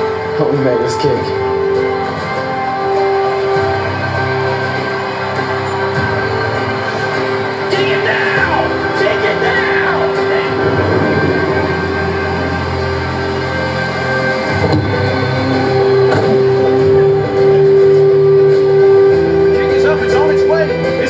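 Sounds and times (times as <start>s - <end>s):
dramatic orchestral music over loudspeakers: 0.0s - 21.0s.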